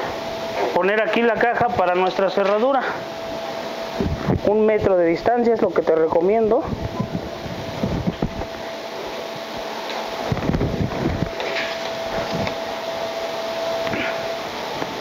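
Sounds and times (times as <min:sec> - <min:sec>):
faint steady whine: 0:00.0 - 0:15.0
whirring mechanical hum: 0:00.0 - 0:15.0.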